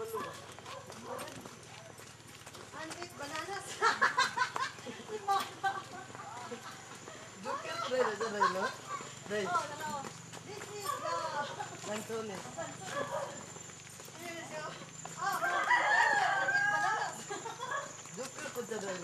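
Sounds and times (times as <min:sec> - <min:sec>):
rooster crowing: 0:15.2 - 0:17.2.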